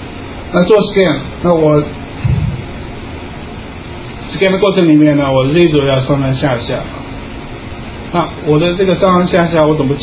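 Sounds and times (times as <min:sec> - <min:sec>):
room noise hiss: 0:00.0 - 0:10.0
short low sound: 0:02.2 - 0:02.9.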